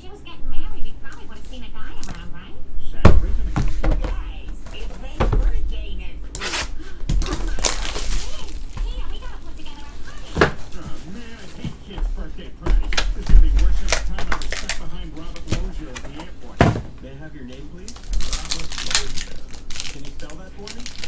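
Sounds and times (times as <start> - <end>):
background talk: 0.0 - 21.0
low thumps: 3.0 - 6.4, 11.8 - 14.2
foil packs crinkling: 6.4 - 16.6, 17.4 - 21.0.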